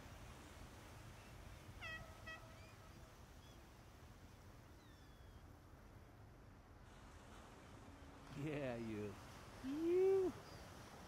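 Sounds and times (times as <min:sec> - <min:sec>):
faint surf wash: 0:00.0 - 0:11.0.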